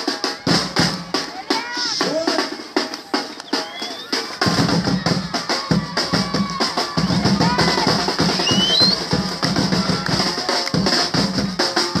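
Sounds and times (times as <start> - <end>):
bass drums: 0.0 - 12.0
snare drums: 0.0 - 12.0.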